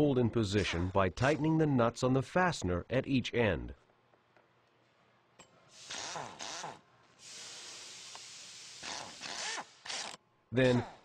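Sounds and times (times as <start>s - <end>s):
steady hiss: 5.6s - 10.1s
power nut driver running: 8.8s - 10.2s.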